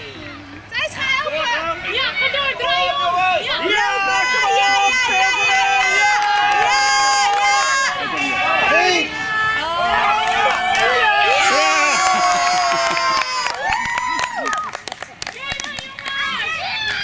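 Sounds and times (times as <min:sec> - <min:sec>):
long drawn-out yells: 0:00.8 - 0:14.8
children and spectators shouting: 0:01.5 - 0:14.8, 0:15.4 - 0:17.0.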